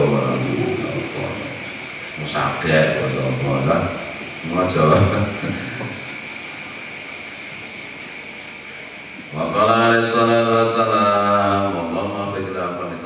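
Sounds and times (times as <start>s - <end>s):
faint high whine: 0.0s - 13.0s
steady hiss: 0.0s - 13.0s.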